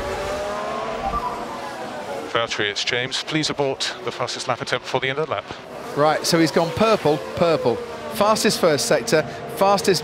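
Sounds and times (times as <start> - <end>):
race car engine accelerating: 0.0 - 2.4.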